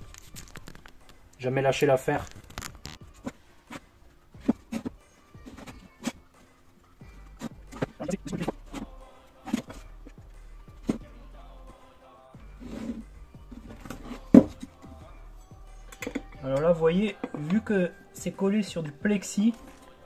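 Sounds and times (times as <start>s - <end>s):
faint background music: 0.0s - 20.0s
person speaking: 8.0s - 8.6s, 16.4s - 19.9s.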